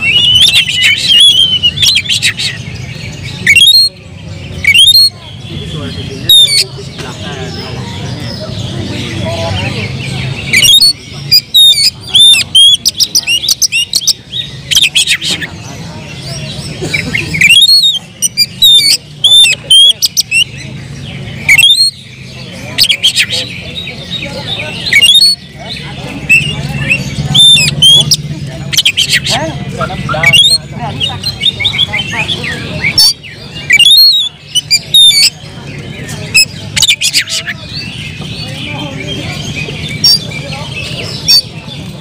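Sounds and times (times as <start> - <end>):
bird singing whistled notes: 0.0 - 6.8, 8.2 - 15.5, 17.4 - 41.9.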